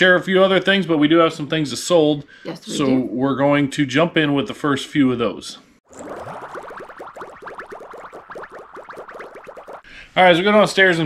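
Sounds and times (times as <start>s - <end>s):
speech: 0.0s - 5.6s, 10.2s - 11.0s.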